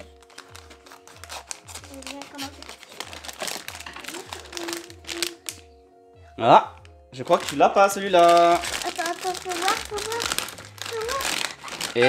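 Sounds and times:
plastic foil sachet crinkling: 0.0s - 5.7s, 6.7s - 12.0s.

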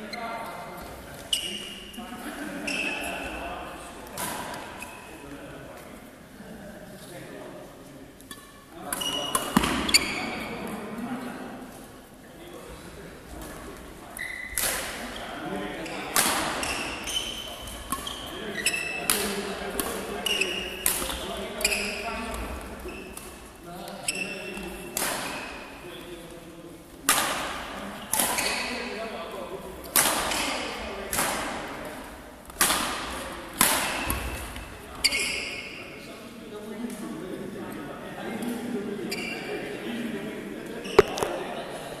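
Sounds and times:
rackets striking shuttlecock: 8.3s - 9.9s, 24.9s - 25.5s, 41.0s - 41.4s.

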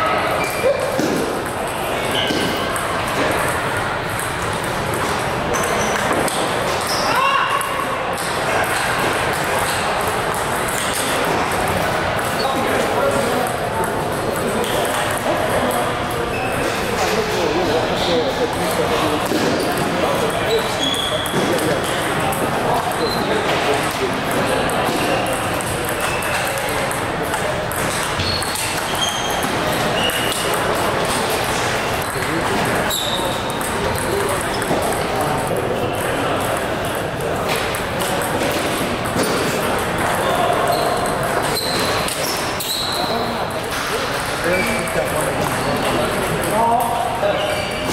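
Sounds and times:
crowd chatter: 0.0s - 47.9s.

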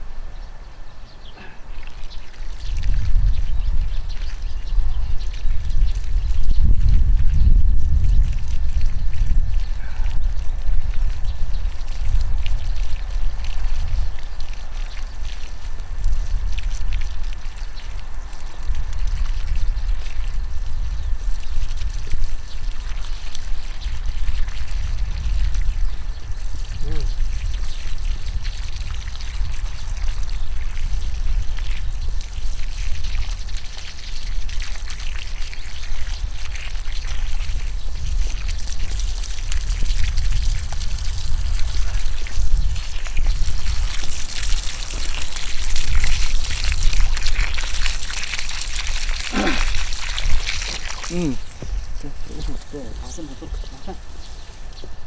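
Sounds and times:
water splashing onto soil: 1.4s - 55.0s.

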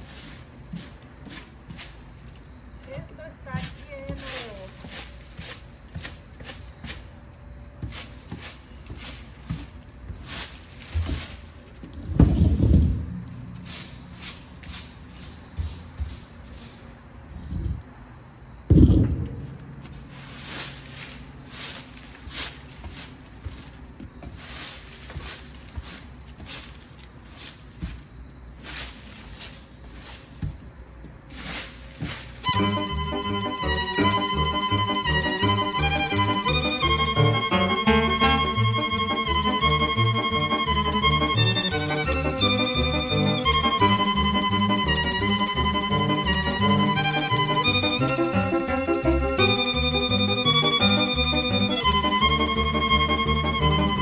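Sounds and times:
broom sweeping dry leaves: 0.0s - 7.2s, 7.8s - 17.0s, 19.8s - 47.8s
violin music: 32.4s - 54.0s.

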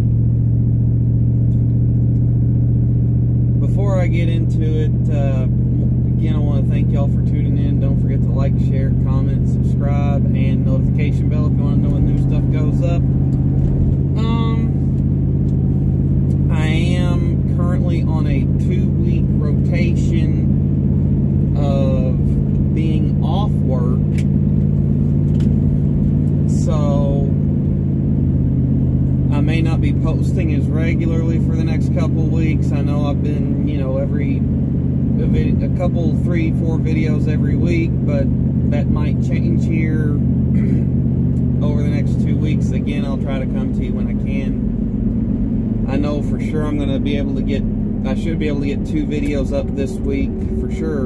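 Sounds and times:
car engine drone: 0.0s - 51.0s
road noise: 0.0s - 51.0s
man talking: 3.6s - 13.1s, 14.1s - 14.9s, 16.3s - 20.6s, 21.5s - 24.2s, 26.4s - 27.4s, 29.3s - 34.4s, 35.2s - 40.8s, 41.6s - 44.6s, 45.9s - 51.0s.

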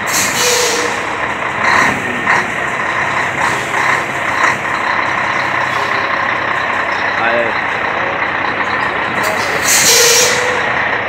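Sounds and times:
diesel truck engine running: 0.0s - 11.0s
air brake hiss: 0.1s - 1.0s.

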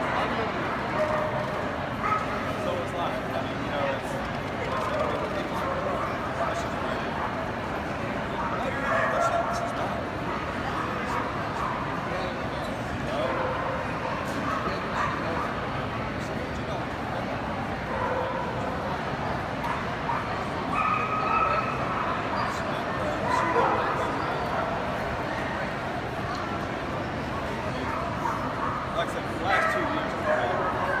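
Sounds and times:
crowd chatter in a hall: 0.0s - 31.0s.

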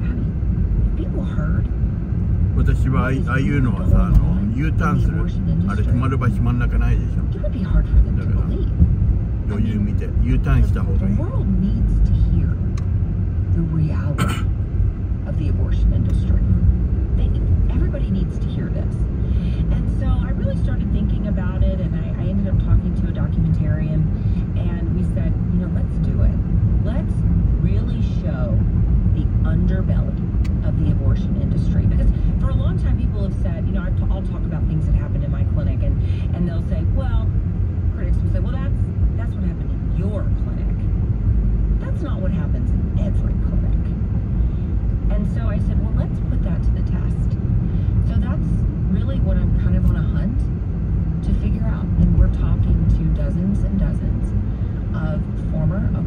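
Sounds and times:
car road and engine rumble: 0.0s - 56.0s.

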